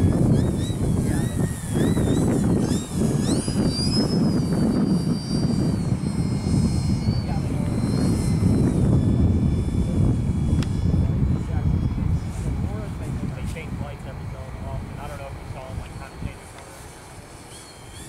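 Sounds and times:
model airplane motor whine: 0:00.0 - 0:18.0
wind rumble on microphone: 0:00.0 - 0:18.0.

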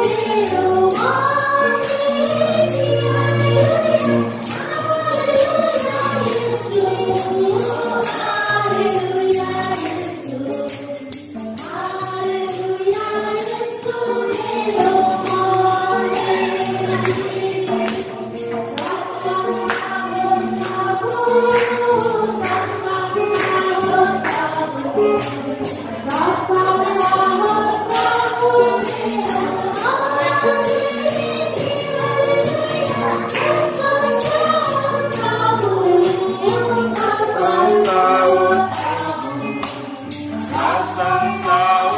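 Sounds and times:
hand percussion beat: 0:00.0 - 0:41.9
tambourine shaken: 0:00.0 - 0:41.9
women singing a hymn in unison: 0:00.0 - 0:41.9.

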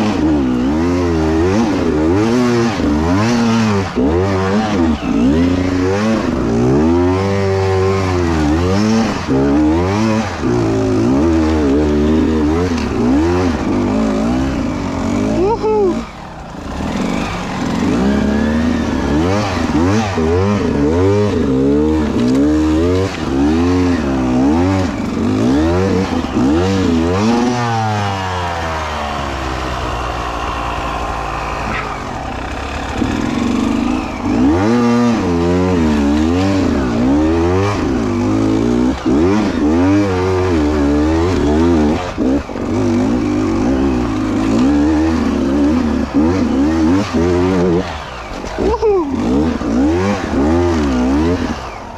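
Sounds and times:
motorcycle engine revving: 0:00.0 - 0:51.9.

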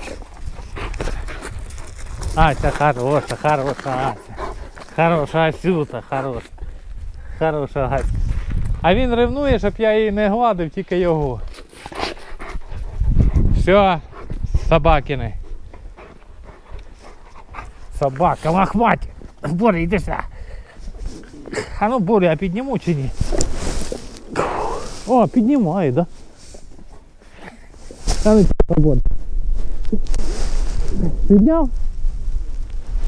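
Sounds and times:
dogs scuffling on gravel: 0:00.0 - 0:06.4.

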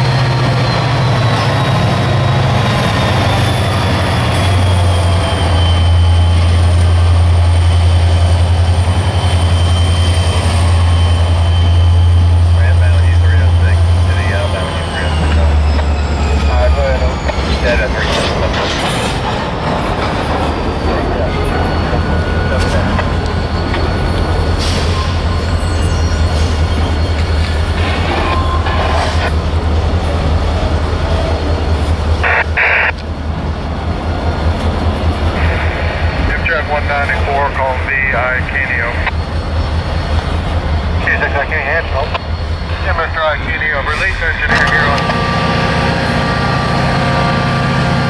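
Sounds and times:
wheel squeal: 0:00.0 - 0:12.5, 0:14.3 - 0:18.4, 0:19.8 - 0:29.3
diesel locomotive engine drone: 0:00.0 - 0:48.0
sharp clanks of rail cars: 0:13.2 - 0:37.8, 0:43.7 - 0:48.0.

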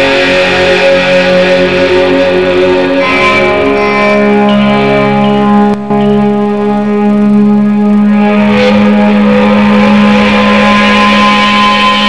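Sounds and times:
low drone: 0:00.0 - 0:12.0
sustained electric guitar notes: 0:00.0 - 0:12.0.

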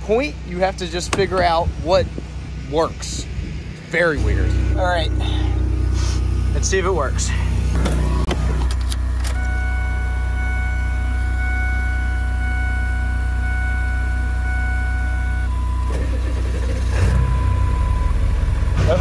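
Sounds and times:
diesel engine cranking and starting: 0:00.0 - 0:19.0
low hum: 0:00.0 - 0:19.0
steady electronic tone: 0:03.9 - 0:15.9.

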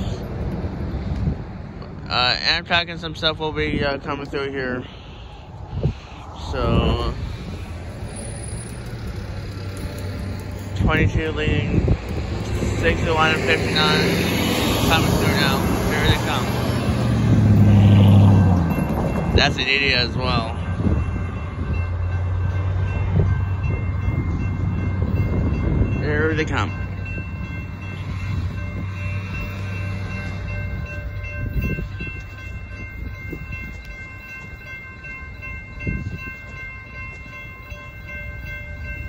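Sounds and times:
train rumble: 0:00.0 - 0:39.0
crossing signal bell ringing: 0:06.4 - 0:39.0.

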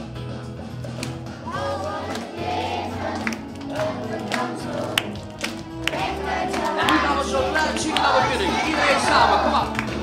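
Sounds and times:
backing track music: 0:00.0 - 0:10.0
handclaps: 0:00.9 - 0:01.3, 0:02.0 - 0:02.5, 0:03.1 - 0:10.0
adults and children singing: 0:01.5 - 0:09.8.

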